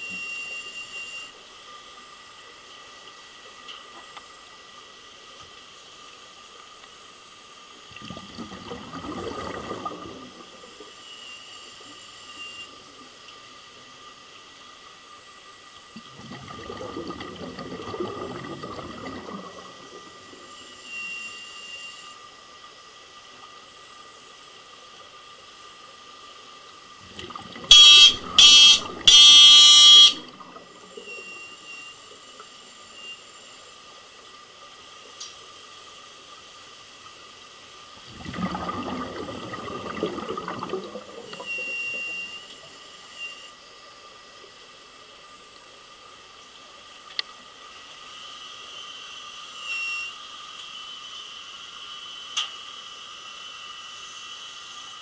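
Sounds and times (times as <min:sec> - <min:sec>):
faint steady hum: 0:00.0 - 0:55.0
underwater breath bubbles: 0:07.9 - 0:10.7, 0:16.0 - 0:20.4, 0:38.0 - 0:42.3
loud buzzing tone: 0:27.7 - 0:30.3.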